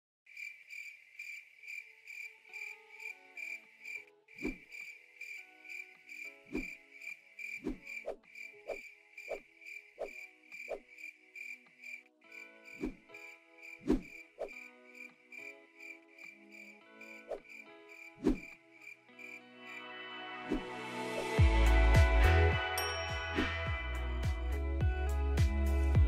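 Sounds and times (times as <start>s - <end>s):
cricket chirping: 0.3s - 19.8s
soft music notes: 19.0s - 26.0s.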